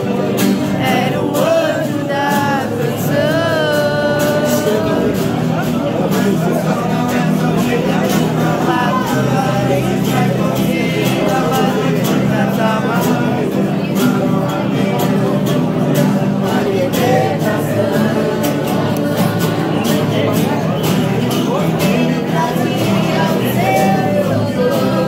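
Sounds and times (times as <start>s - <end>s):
group singing a hymn: 0.0s - 25.0s
strummed acoustic guitars: 0.0s - 25.0s.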